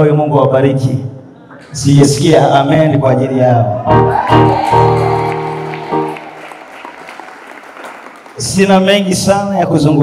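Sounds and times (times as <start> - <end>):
congregation applauding: 3.9 - 9.1.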